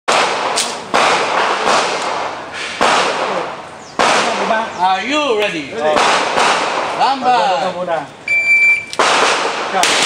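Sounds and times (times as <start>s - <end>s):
pistol gunshots echoing: 0.1s - 4.6s, 5.8s - 7.2s, 9.0s - 10.0s.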